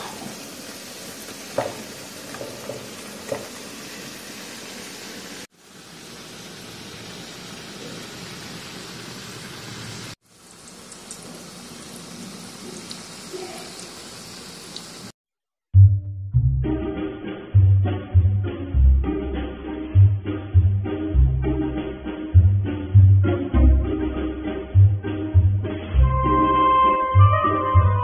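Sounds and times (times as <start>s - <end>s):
fritters sizzling in oil: 0.0s - 15.2s.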